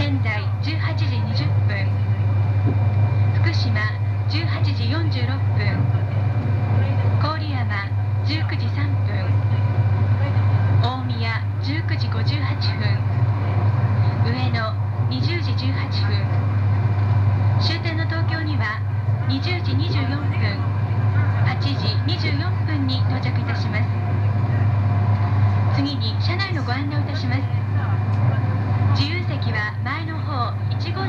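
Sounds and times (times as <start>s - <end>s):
woman announcing over public address: 0.0s - 2.3s, 3.4s - 16.5s, 17.6s - 24.8s, 25.6s - 31.0s
train rumble from inside: 0.0s - 31.0s.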